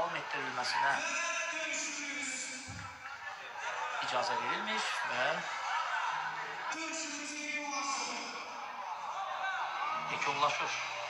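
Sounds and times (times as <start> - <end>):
man speaking: 0.0 - 2.8, 6.6 - 8.5, 10.0 - 10.9
arena background noise: 0.0 - 11.0.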